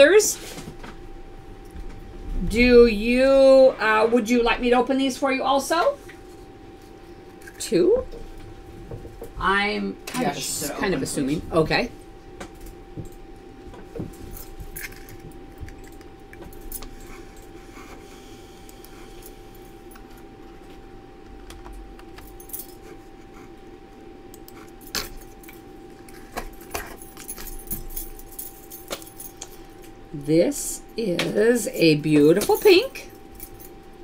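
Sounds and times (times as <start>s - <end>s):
steady hum: 0.0s - 34.0s
clicks and metallic clinks: 24.4s - 29.8s.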